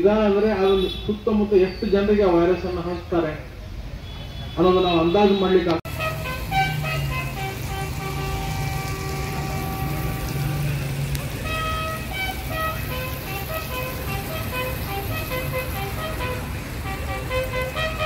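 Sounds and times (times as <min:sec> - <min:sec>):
brass instrument playing long notes: 0:05.9 - 0:18.0.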